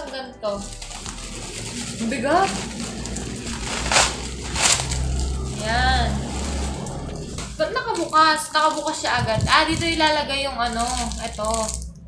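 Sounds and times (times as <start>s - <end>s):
bubble wrap rustling and crinkling: 0.5s - 12.0s.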